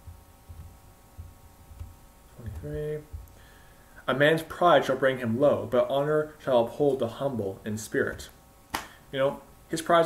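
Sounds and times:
soft low thumps: 0.0 - 3.5
faint steady hum: 0.0 - 10.0.

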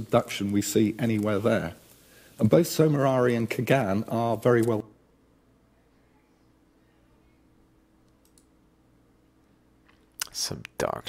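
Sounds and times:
computer mouse clicks: 8.0 - 8.5.

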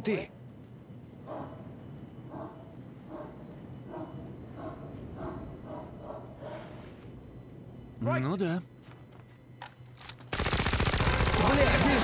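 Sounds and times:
dog barking: 1.2 - 1.6, 2.3 - 6.8.

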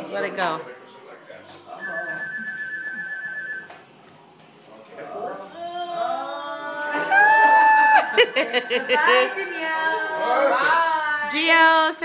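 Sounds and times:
high whistling tone: 1.8 - 3.8.

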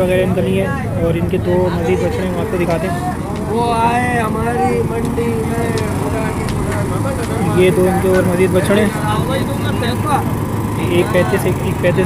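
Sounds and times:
people talking: 0.0 - 12.0
steady low hum: 0.0 - 12.0.

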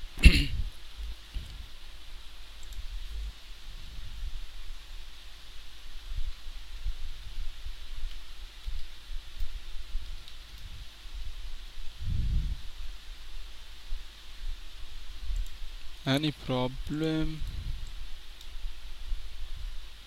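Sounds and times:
microphone hiss: 0.0 - 20.0.

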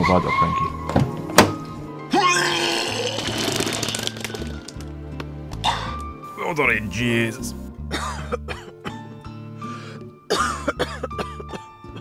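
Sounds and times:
man retching and vomiting: 2.1 - 4.8, 5.6 - 6.0, 7.9 - 9.1, 10.3 - 11.6.

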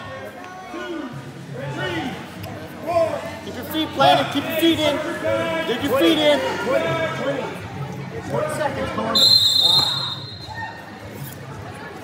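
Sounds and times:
referee's whistle blast: 9.2 - 10.6.

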